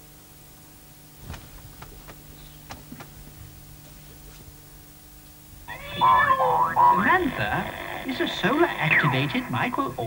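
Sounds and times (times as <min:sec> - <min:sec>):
steady low hum: 0:00.0 - 0:10.0
cartoon cat yowl: 0:05.7 - 0:07.4
television cartoon sound: 0:05.7 - 0:10.0.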